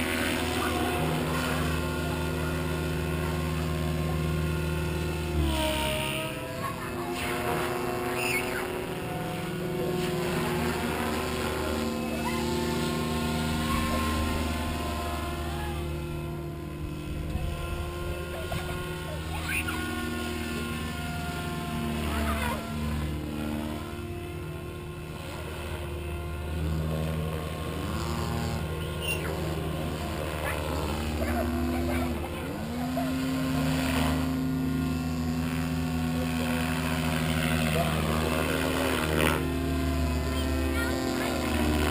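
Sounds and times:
rc helicopter rotor and motor: 0.0 - 41.9.

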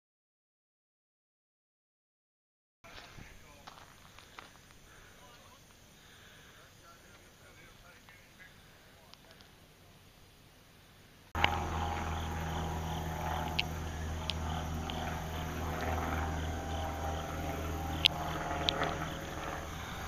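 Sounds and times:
sharp clicks: 11.4 - 12.1, 13.1 - 15.1, 18.0 - 19.6
vehicle engine idling: 11.4 - 20.0.

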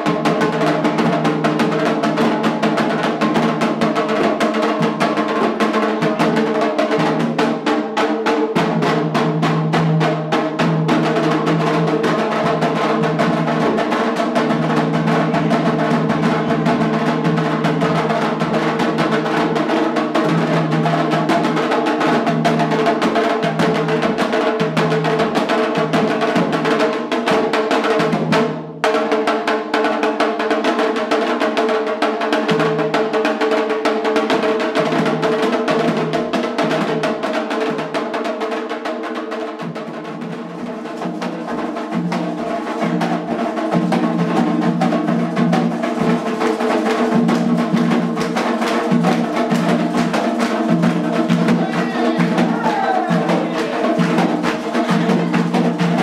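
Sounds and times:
hand drums fast rhythm: 0.0 - 56.0.

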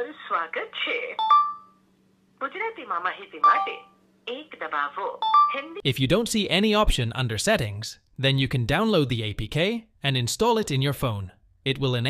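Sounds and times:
steady telephone tones: 1.1 - 1.8, 3.3 - 4.0, 5.1 - 5.8.

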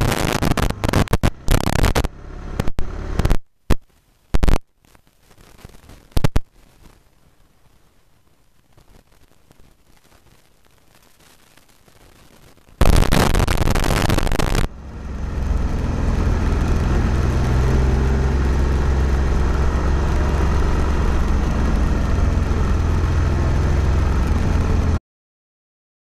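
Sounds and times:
road rumble: 0.0 - 4.6, 12.6 - 25.0.

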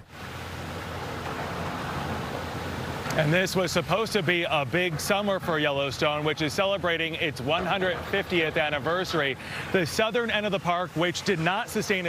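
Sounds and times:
floodwater rushing in creek: 0.0 - 12.0.

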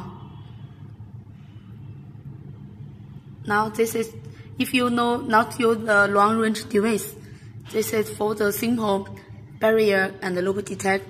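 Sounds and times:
low background rumble and hum: 0.0 - 11.0.

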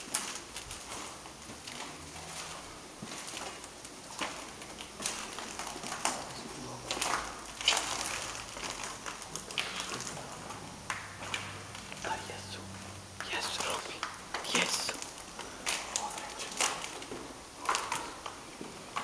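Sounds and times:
footsteps in a corridor: 0.0 - 14.7, 15.4 - 19.0
quiet voices: 12.0 - 15.1.

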